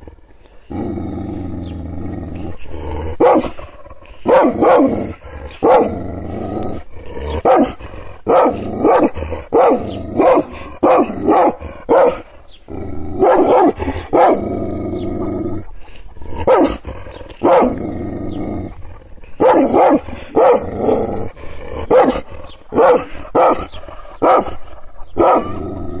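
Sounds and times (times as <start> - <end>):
drawn-out low dog sounds: 0.0 - 26.0
dog barking deeply: 2.9 - 15.7, 16.3 - 18.0, 19.4 - 26.0.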